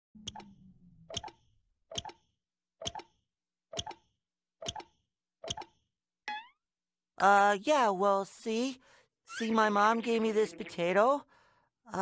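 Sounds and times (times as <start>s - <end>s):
clock ticking: 0.2s - 2.2s.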